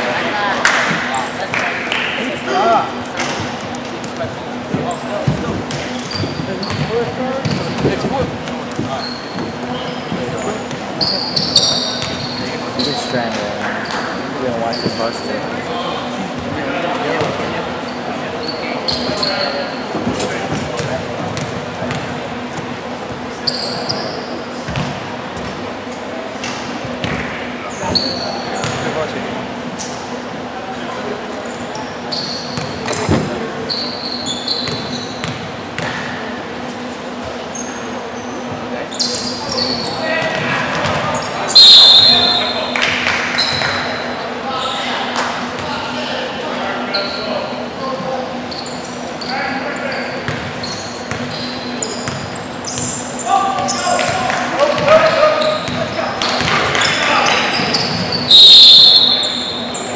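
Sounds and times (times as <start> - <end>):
background voices chattering: 0.0 - 59.9
sneakers squeaking on court: 3.3 - 13.1, 13.7 - 15.6, 17.2 - 25.7, 26.4 - 29.0, 31.4 - 36.2, 37.1 - 42.7, 43.3 - 44.8, 46.8 - 59.9
basketball bouncing: 34.6 - 36.0.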